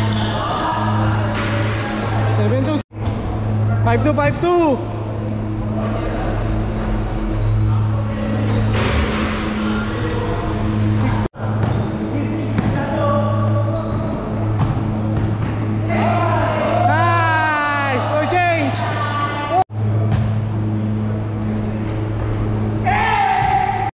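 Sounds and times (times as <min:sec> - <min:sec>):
players' voices: 0:00.0 - 0:02.8, 0:03.4 - 0:19.6
background music with low bass: 0:00.0 - 0:23.9
basketball bouncing on hard court: 0:13.9 - 0:15.6.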